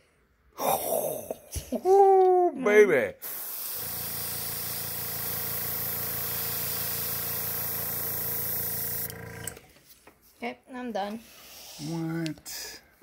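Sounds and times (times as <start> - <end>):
airbrush hissing: 3.2 - 9.2.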